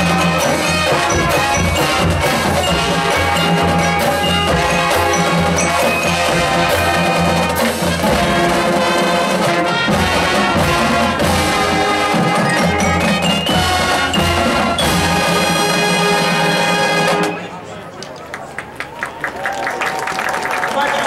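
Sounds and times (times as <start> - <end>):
marimbas: 0.0 - 8.6, 10.4 - 16.2
brass section chords: 0.0 - 17.4.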